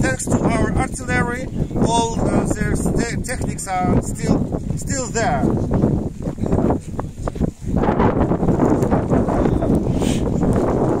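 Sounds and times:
wind on microphone: 0.0 - 11.0
rustling on microphone: 5.4 - 11.0.

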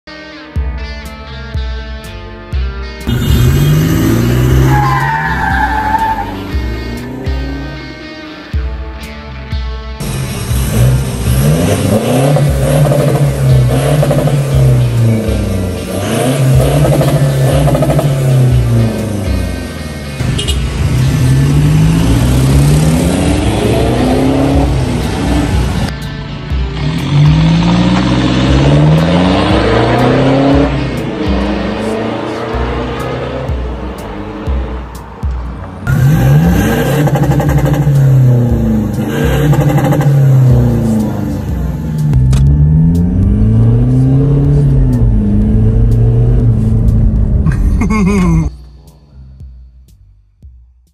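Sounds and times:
music playing: 0.1 - 50.9
diesel engine revving: 3.1 - 8.0, 10.0 - 25.9, 26.5 - 48.5.

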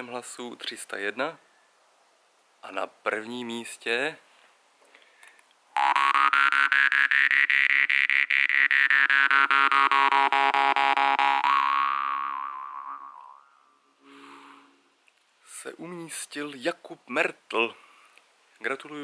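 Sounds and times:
jaw harp twanging: 5.8 - 13.6.

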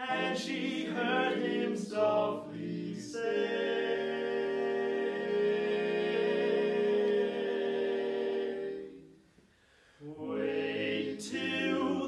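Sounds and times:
male vocal quartet singing: 0.0 - 9.0, 10.0 - 12.0.

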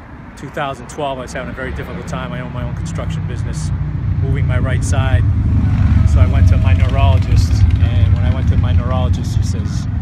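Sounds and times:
man speaking: 0.4 - 5.3, 6.0 - 9.9.

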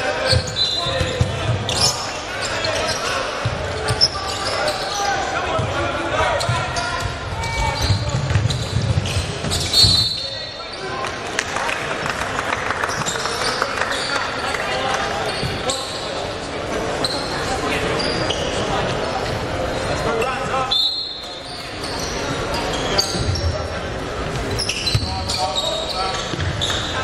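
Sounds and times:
echoing crowd chatter: 0.0 - 27.0
shoes squeaking on floor: 0.1 - 11.0, 15.2 - 27.0.

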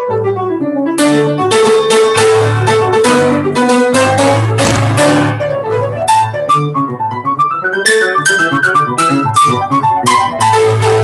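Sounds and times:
grand piano playing: 0.0 - 11.0.

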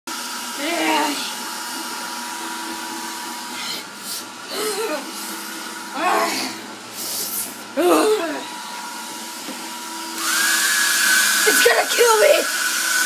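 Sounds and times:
hair dryer running: 0.1 - 13.0
child's voice: 11.5 - 12.5.

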